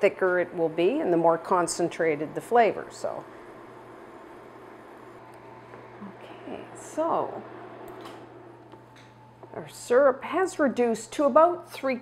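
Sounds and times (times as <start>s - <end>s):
induction burner humming: 0.0s - 12.0s.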